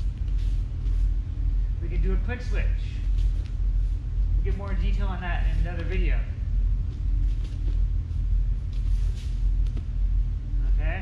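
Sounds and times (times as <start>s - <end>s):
bare feet on foam mats: 0.0s - 1.3s, 2.9s - 6.1s, 6.7s - 10.0s
low room rumble: 0.0s - 11.0s.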